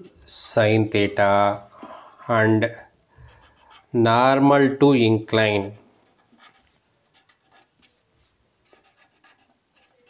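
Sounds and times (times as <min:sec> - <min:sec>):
pen scratching on paper: 0:03.2 - 0:03.9, 0:06.0 - 0:08.0, 0:08.6 - 0:10.0.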